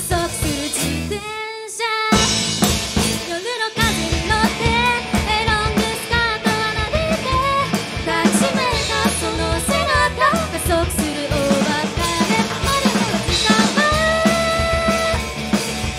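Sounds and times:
woman singing: 0.0 - 2.3, 3.2 - 15.3
live rock band: 0.0 - 15.9
drum hit: 2.2 - 15.9.

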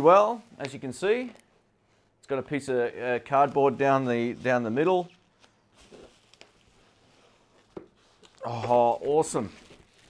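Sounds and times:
bubble wrap and cardboard handling: 2.5 - 10.0.

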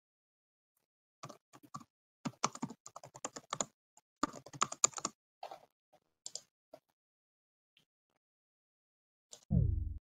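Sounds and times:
typing on computer keyboard: 1.2 - 5.6.

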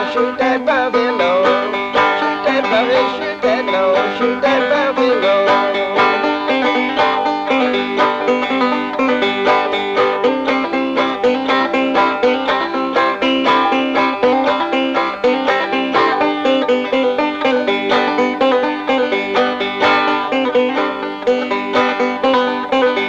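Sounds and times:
banjo picking: 0.0 - 23.0.

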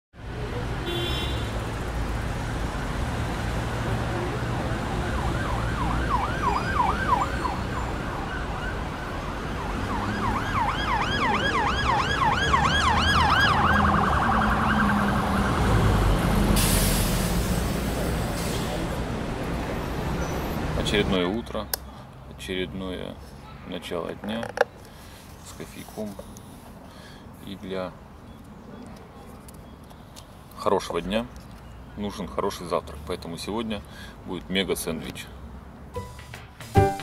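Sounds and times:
traffic rumble: 0.2 - 36.8
emergency siren yelping: 4.9 - 16.4
short hiss: 16.6 - 17.6.

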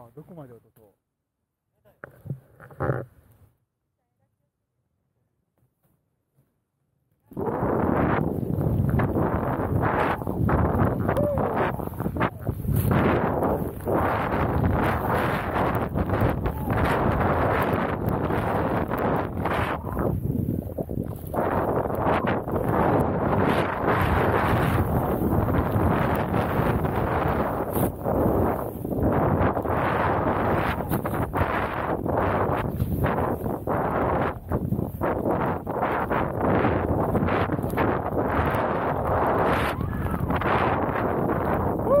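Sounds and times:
wind buffeting microphone: 7.3 - 42.0
snowboard rushing through powder snow: 7.4 - 42.0.

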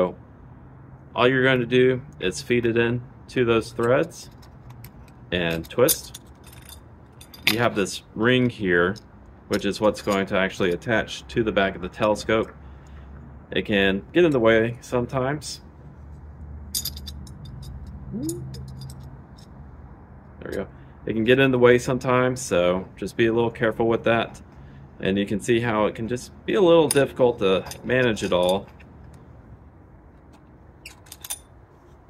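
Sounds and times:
low steady background noise: 0.0 - 32.0
metal parts clicking and scraping: 3.7 - 10.9, 16.7 - 19.6, 26.6 - 29.2, 30.2 - 31.7.

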